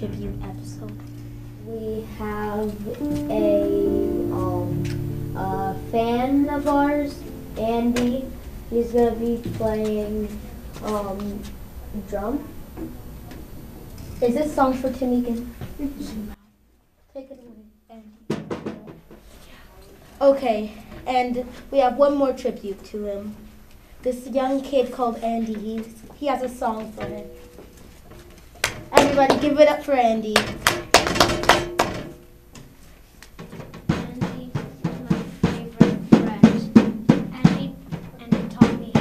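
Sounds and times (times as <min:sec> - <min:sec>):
child beating hand drum: 0:01.7 - 0:08.4, 0:30.4 - 0:32.2, 0:33.4 - 0:39.0
quick drum hits: 0:33.6 - 0:39.0.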